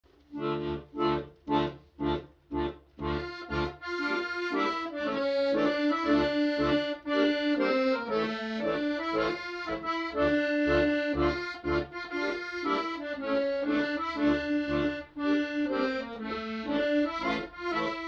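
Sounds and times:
piano accordion playing: 0:00.3 - 0:18.0.

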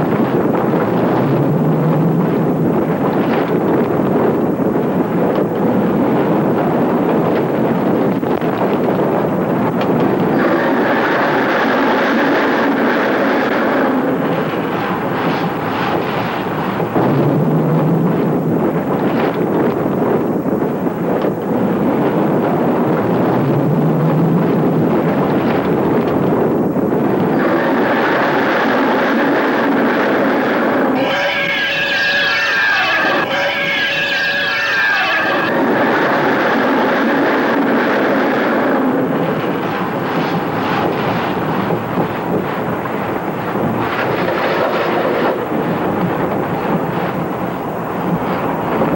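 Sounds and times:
roller coaster rushing on track: 0:00.0 - 0:48.9
eerie gliding tones: 0:10.2 - 0:15.2, 0:27.2 - 0:40.6.

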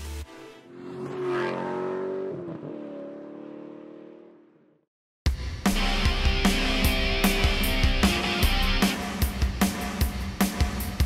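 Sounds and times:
background music: 0:00.0 - 0:00.8, 0:05.3 - 0:11.0
vehicle engine revving: 0:00.6 - 0:04.6.

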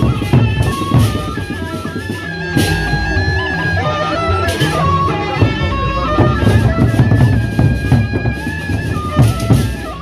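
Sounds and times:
barrel drums struck with mallets: 0:00.0 - 0:03.6
high held melody line: 0:00.0 - 0:10.0.

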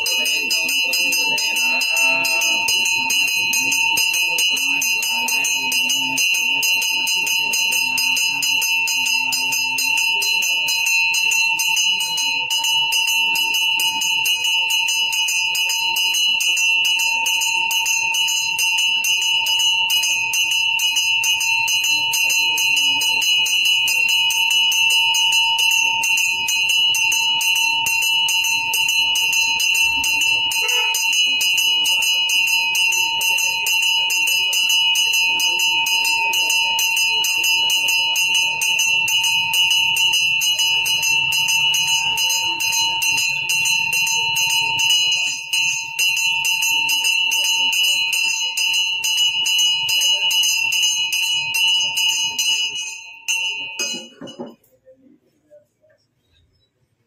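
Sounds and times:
bell rung rapidly: 0:00.0 - 0:54.7.

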